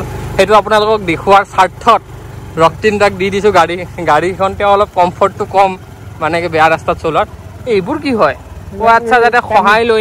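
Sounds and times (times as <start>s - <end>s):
motorbike engine hum: 0.0s - 10.0s
man talking: 0.3s - 10.0s.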